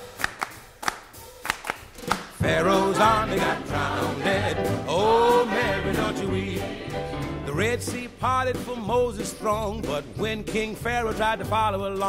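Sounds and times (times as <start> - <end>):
handclaps: 0.0 - 2.4.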